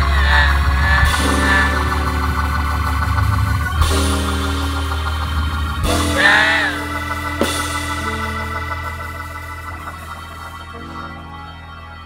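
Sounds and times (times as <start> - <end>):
low bass note: 0.0 - 12.0
organ sustained chord: 0.0 - 12.0.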